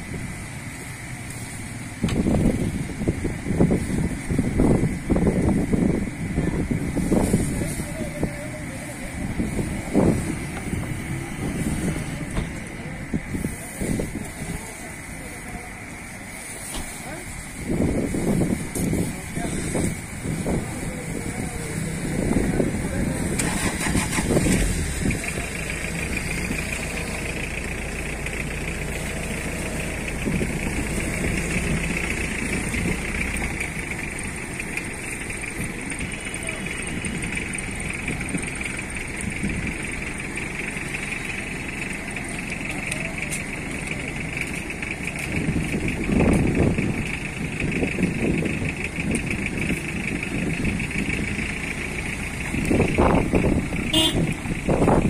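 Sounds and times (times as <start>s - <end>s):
vehicle engine humming: 0.0s - 55.0s.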